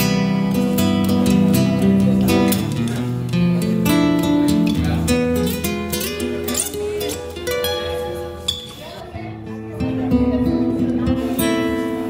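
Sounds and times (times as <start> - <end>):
classical guitar notes: 0.0 - 12.0
strummed guitar chords: 0.0 - 12.0.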